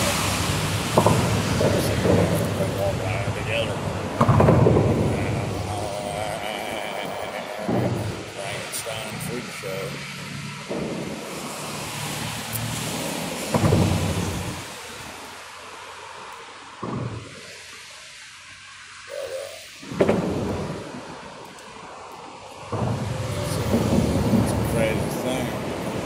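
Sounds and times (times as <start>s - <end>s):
thunder rumbling: 0.0s - 9.6s, 13.2s - 15.2s, 19.2s - 21.4s, 22.6s - 26.0s
steady hiss: 0.0s - 26.0s.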